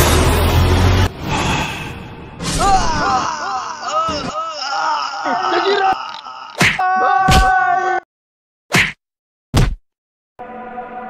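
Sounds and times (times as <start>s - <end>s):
stick striking a body: 6.6s - 7.5s, 8.7s - 9.0s, 9.6s - 9.8s.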